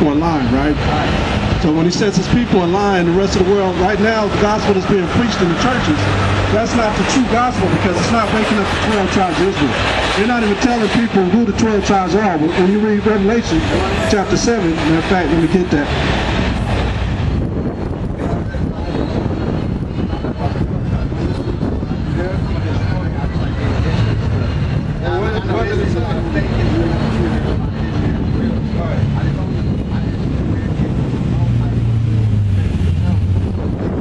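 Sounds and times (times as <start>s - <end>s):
city street traffic: 0.0s - 34.0s
low engine hum: 0.0s - 34.0s
wind on microphone: 0.0s - 34.0s.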